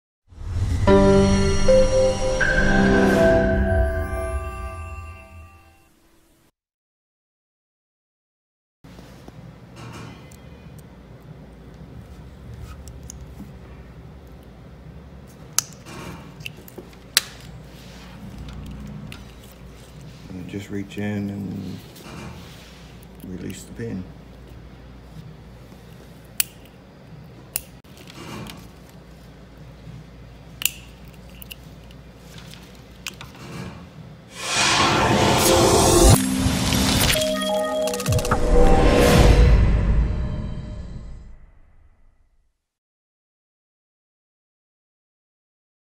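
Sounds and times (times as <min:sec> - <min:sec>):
rising whoosh: 0:00.3 - 0:04.5, 0:34.3 - 0:41.4.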